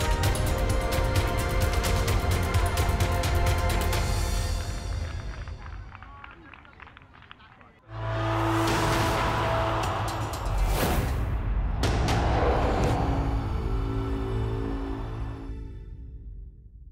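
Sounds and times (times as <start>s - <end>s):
background music: 0.0s - 6.2s, 7.8s - 16.6s.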